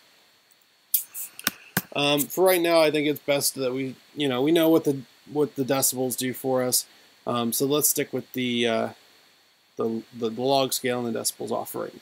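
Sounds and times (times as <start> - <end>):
quick intake of breath: 6.9 - 7.2.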